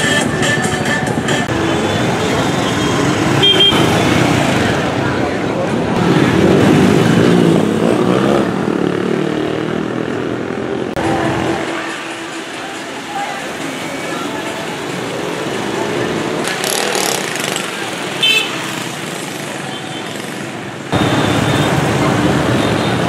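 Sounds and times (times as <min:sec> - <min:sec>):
motorbikes passing: 0:00.0 - 0:23.0.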